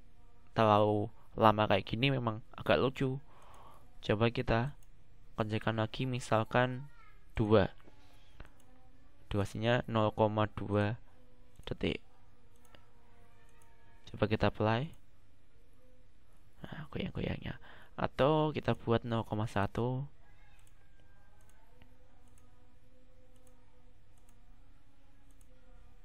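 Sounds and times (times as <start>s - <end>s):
faint background hum: 0.0s - 26.0s
computer mouse click: 3.3s - 3.7s, 7.8s - 8.7s, 12.5s - 13.7s, 20.4s - 22.6s, 23.3s - 24.5s, 25.2s - 25.6s.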